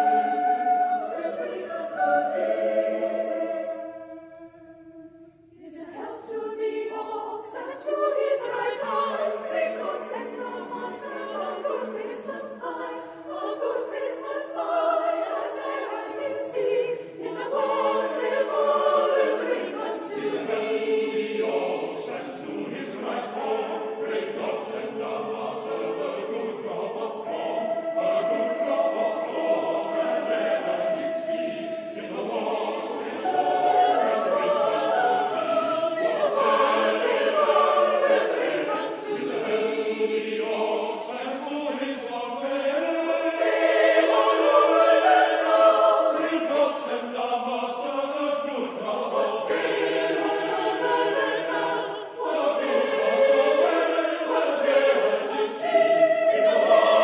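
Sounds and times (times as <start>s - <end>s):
mixed choir singing a carol: 0.0s - 57.0s.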